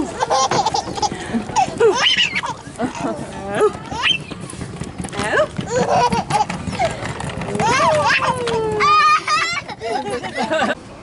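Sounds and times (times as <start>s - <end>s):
scattered clicks and knocks: 0.2s - 10.3s.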